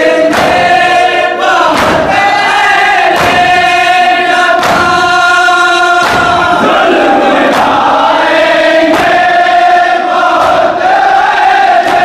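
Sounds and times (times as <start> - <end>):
chest-beating slaps in unison: 0.0 - 12.0
men chanting a lament: 0.0 - 12.0.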